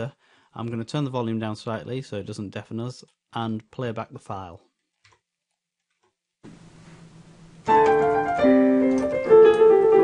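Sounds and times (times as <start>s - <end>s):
steady recording hiss: 6.4s - 10.0s
piano playing slow chords: 7.6s - 10.0s.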